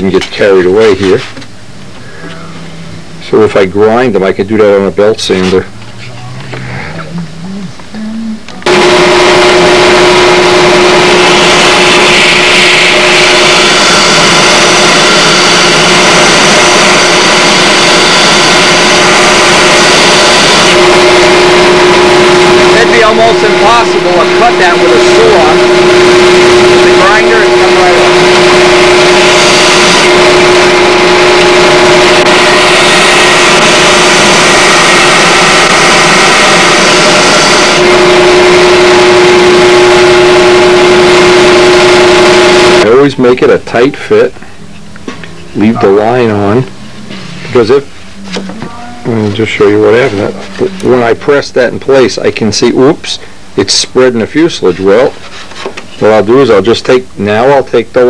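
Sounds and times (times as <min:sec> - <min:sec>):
disc sander motor hum: 0:08.6 - 0:43.0, 0:44.2 - 0:52.4
wood grinding on sander disc: 0:08.6 - 0:43.0, 0:45.1 - 0:52.4.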